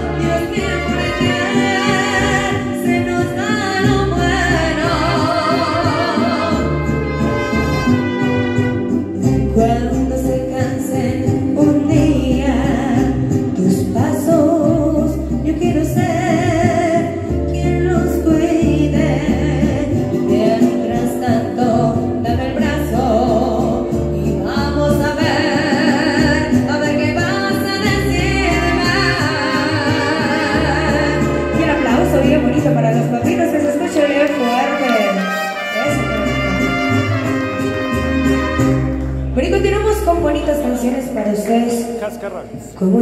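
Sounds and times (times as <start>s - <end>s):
woman singing with vibrato: 0.0s - 35.4s
mariachi band accompaniment: 0.0s - 43.0s.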